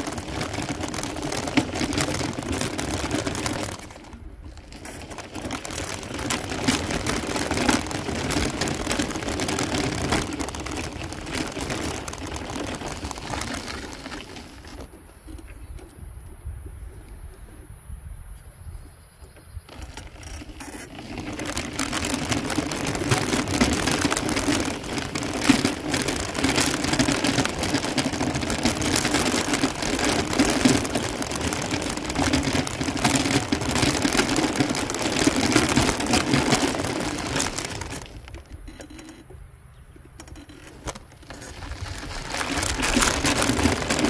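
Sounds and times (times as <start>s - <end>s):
small vehicle motor hum: 0.0s - 16.0s, 19.3s - 44.0s
wheels crunching on gravel: 0.0s - 16.6s, 19.3s - 44.0s.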